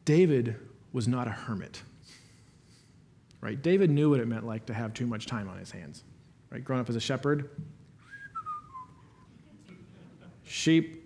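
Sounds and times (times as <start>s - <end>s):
man whistling falling notes: 8.0s - 9.3s.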